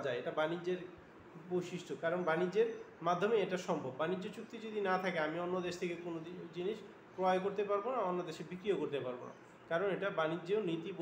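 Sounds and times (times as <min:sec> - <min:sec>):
man lecturing: 0:00.0 - 0:11.0.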